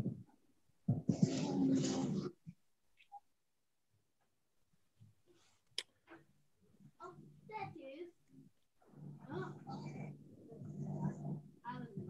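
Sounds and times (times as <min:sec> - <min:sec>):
faint talking over video call: 0:00.9 - 0:03.4, 0:06.8 - 0:12.0.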